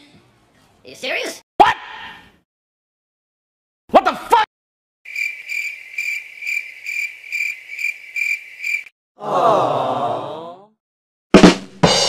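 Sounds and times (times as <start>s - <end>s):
cricket chirping: 5.1s - 8.9s
falling groan-like voice: 9.2s - 10.7s.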